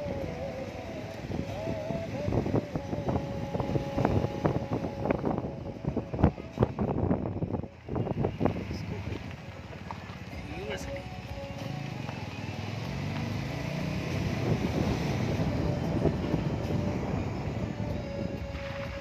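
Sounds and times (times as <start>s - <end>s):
car engine and road noise: 0.0s - 19.0s
music: 0.0s - 19.0s
indistinct voices: 8.6s - 12.4s.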